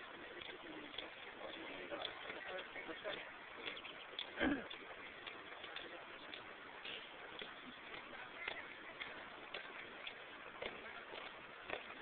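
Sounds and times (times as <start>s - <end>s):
boots marching on pavement: 0.0s - 12.0s.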